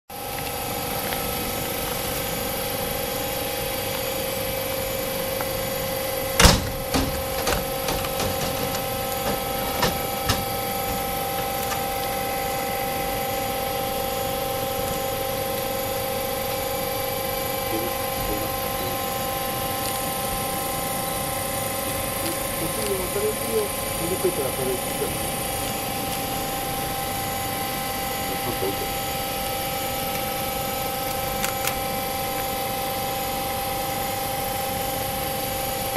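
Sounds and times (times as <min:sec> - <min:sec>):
railcar electrical equipment humming: 0:00.1 - 0:35.9.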